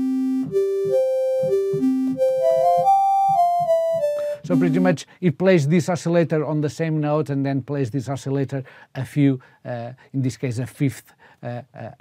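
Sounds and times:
synthesizer melody in open fifths: 0:00.0 - 0:05.0.

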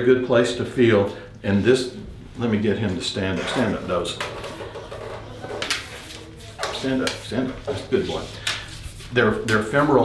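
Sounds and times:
man speaking: 0:00.0 - 0:04.3, 0:06.7 - 0:08.4, 0:09.1 - 0:10.0.

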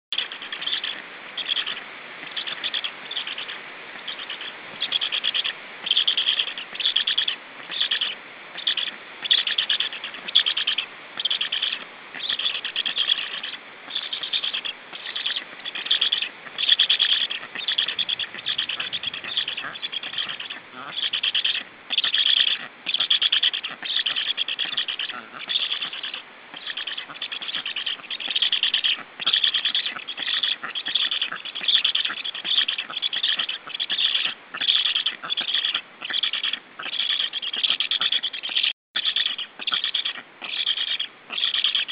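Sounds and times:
stork nestlings calling: 0:00.2 - 0:41.9.

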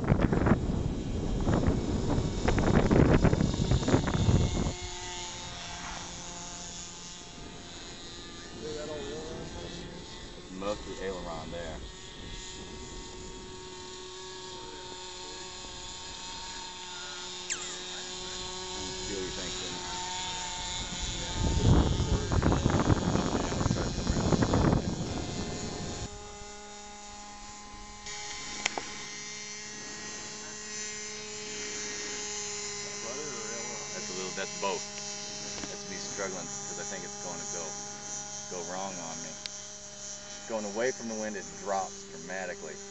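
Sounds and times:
model aircraft motor buzzing: 0:00.0 - 0:42.9.

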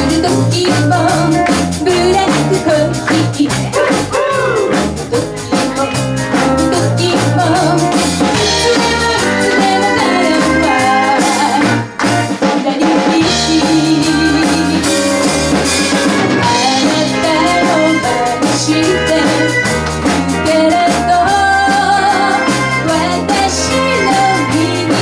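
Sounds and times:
woman singing: 0:00.0 - 0:04.1, 0:05.1 - 0:15.3, 0:16.3 - 0:25.0
live pop band playing: 0:00.0 - 0:25.0.

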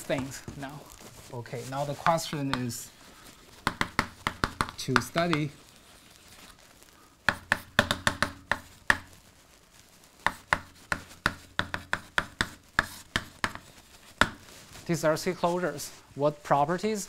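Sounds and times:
chalk tapping on blackboard: 0:01.8 - 0:02.8, 0:03.6 - 0:05.6, 0:07.3 - 0:09.2, 0:10.2 - 0:14.6.

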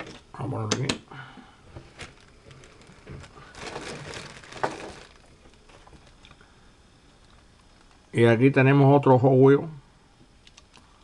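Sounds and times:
toy cars handling rustle: 0:01.9 - 0:06.4.

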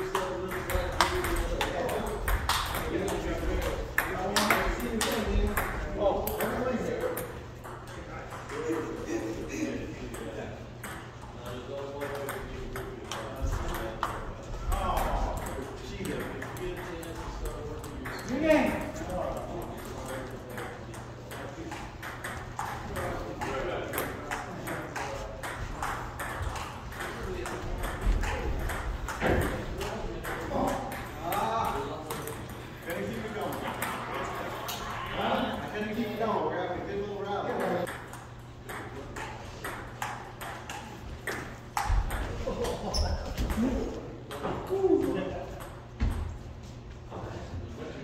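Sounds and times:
people talking: 0:00.0 - 0:37.9, 0:41.2 - 0:45.8
table tennis balls clicking: 0:12.0 - 0:34.0, 0:37.6 - 0:43.7.

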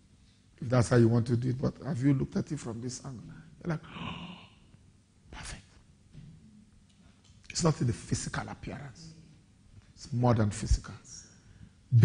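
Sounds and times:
man sighing: 0:03.8 - 0:04.6.

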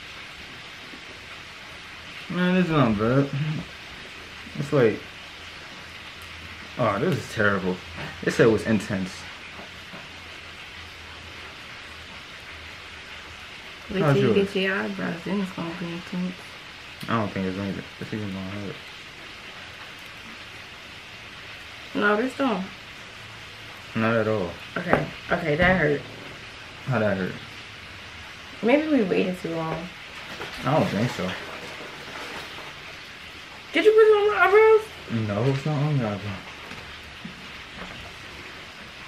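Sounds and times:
low room noise hiss: 0:00.0 - 0:39.0
people talking: 0:02.3 - 0:03.7, 0:13.9 - 0:16.4, 0:22.0 - 0:22.7, 0:24.0 - 0:26.1, 0:28.6 - 0:29.9, 0:30.6 - 0:31.4, 0:33.8 - 0:36.4.

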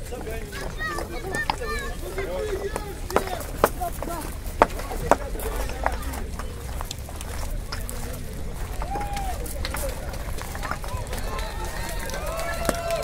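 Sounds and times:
concrete blocks clacking: 0:00.0 - 0:13.0
voices talking: 0:00.0 - 0:13.0
steady low rumble: 0:01.8 - 0:13.0.

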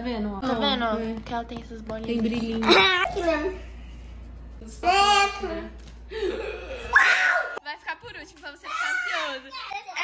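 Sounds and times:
young child's excited voice: 0:08.6 - 0:10.0.

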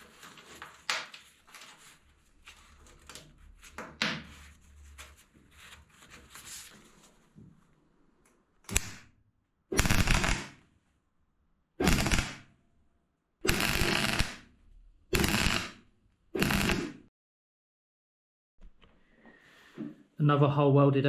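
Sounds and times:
welder crackling bursts: 0:09.7 - 0:10.6, 0:11.8 - 0:12.5, 0:13.5 - 0:14.5, 0:15.1 - 0:15.8, 0:16.4 - 0:17.0.

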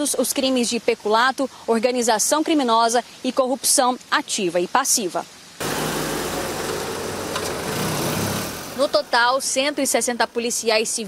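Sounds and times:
street noise hiss: 0:00.0 - 0:11.0
vehicle engines pulling away: 0:05.6 - 0:09.6.

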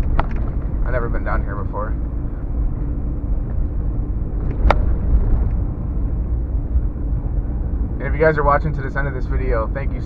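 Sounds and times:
engine and tyres on dirt road: 0:00.0 - 0:10.0.

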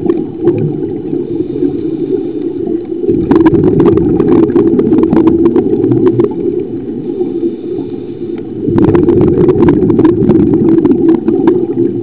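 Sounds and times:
muffled underwater rumble: 0:00.0 - 0:12.0.

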